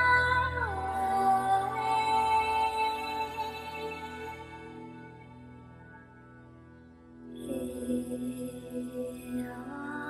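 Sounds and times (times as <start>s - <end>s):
person chanting on a steady note: 0.0s - 5.4s, 7.4s - 10.0s
soft sustained drone: 0.0s - 10.0s.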